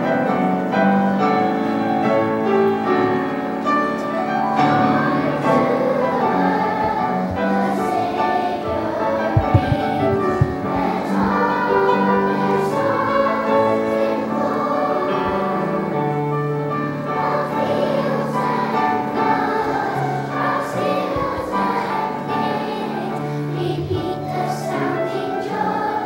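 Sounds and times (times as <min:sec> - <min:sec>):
children's choir singing: 0:00.0 - 0:26.0
low accompanying notes: 0:01.3 - 0:26.0.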